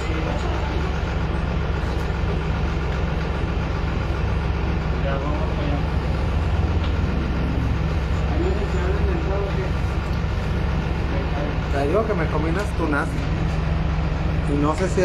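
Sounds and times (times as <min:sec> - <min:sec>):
bus engine droning: 0:00.0 - 0:15.0.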